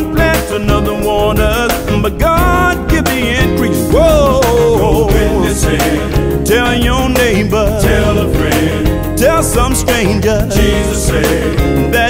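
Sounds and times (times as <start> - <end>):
gospel band playing: 0.0 - 12.0.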